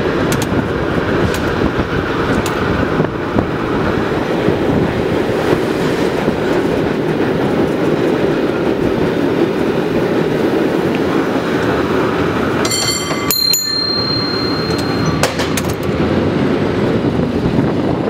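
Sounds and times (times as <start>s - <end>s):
cable car rumbling on tracks: 0.0s - 18.0s.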